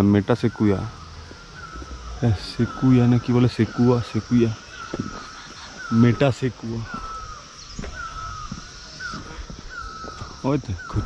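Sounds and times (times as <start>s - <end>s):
bird whistling call: 0.3s - 11.0s.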